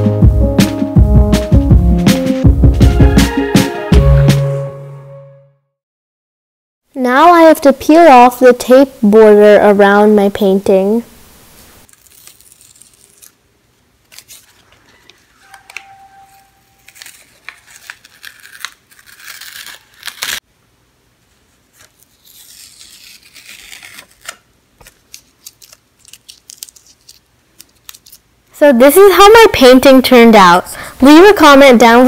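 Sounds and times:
masking tape ripping off canvas: 11.8s - 13.4s, 16.3s - 20.4s, 21.8s - 28.2s.

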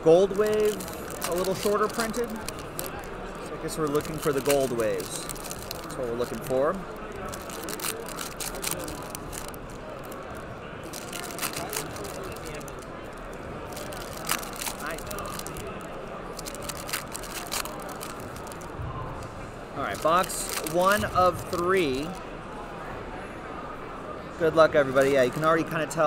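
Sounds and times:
murmur of crowd chatter: 0.0s - 26.0s
foil wrappers crinkling: 0.2s - 18.8s, 19.8s - 22.2s.

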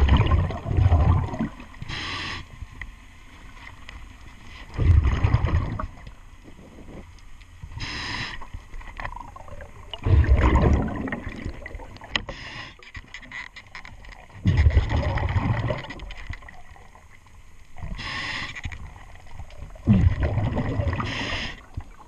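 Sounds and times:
exhaled bubbles rushing: 0.0s - 1.8s, 4.7s - 6.1s, 9.1s - 12.1s, 14.4s - 17.0s, 19.0s - 22.0s
regulator inhale hiss: 1.8s - 2.6s, 7.7s - 8.6s, 12.2s - 13.0s, 17.8s - 18.8s, 21.0s - 21.8s.

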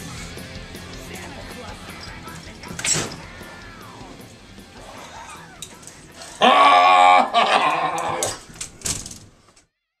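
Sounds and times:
loud wailing call: 6.4s - 8.4s.

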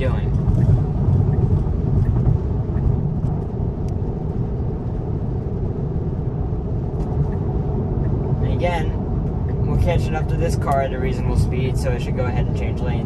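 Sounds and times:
road and tyre noise in car cabin: 0.0s - 13.0s.

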